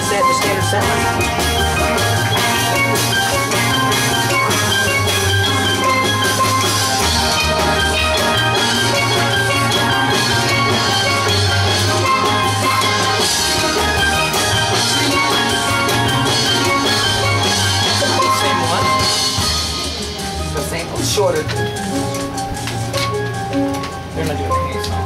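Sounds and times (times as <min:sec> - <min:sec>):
drums keeping a beat: 0:00.0 - 0:25.0
steel band playing: 0:00.0 - 0:25.0.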